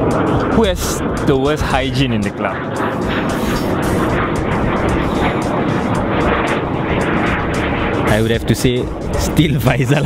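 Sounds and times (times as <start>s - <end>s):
aircraft engine roar overhead: 0.0s - 10.0s.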